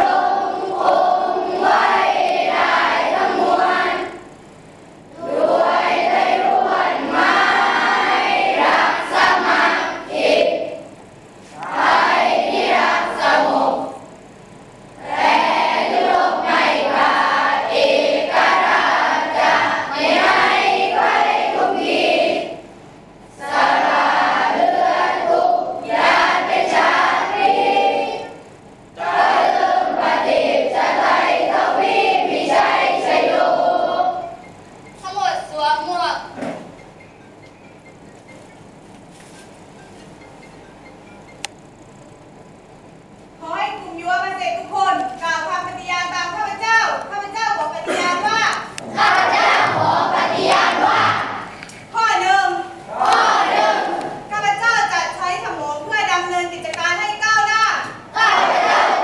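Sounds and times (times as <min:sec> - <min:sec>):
children singing in unison: 0:00.0 - 0:04.2, 0:05.2 - 0:10.8, 0:15.0 - 0:22.6, 0:23.4 - 0:28.4, 0:29.0 - 0:34.4, 0:48.8 - 0:51.5, 0:52.9 - 0:54.2, 0:58.2 - 0:59.0.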